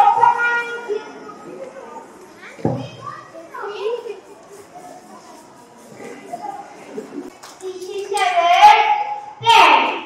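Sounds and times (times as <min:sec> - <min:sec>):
children chattering: 0:00.0 - 0:09.7.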